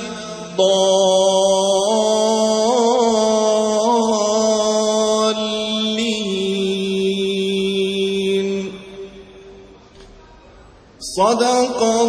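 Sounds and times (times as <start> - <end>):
man reciting melodically: 0.0 - 9.6, 11.0 - 12.0.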